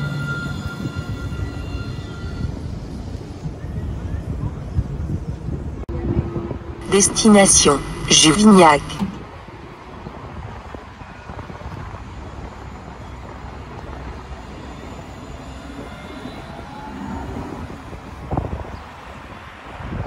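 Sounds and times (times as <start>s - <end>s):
tram rolling past: 0.0s - 20.0s.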